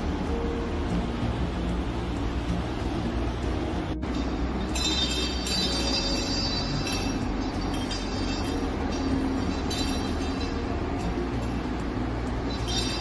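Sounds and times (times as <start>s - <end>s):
metal ball rolling on tile: 4.1s - 11.7s.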